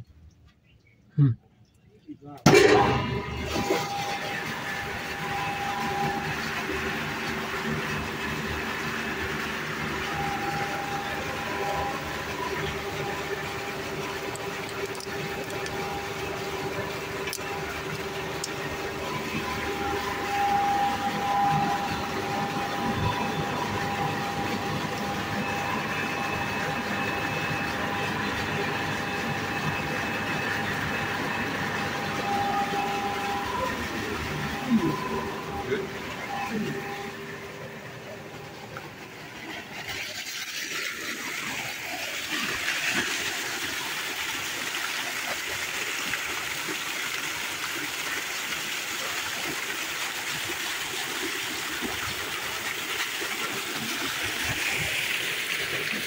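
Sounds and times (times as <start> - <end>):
electric motor humming and whining: 2.5 - 48.2.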